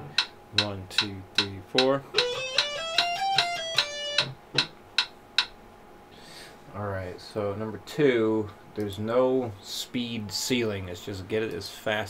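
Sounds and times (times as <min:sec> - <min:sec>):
metronome clicks: 0:00.1 - 0:05.6
electric guitar scale run: 0:02.1 - 0:04.4.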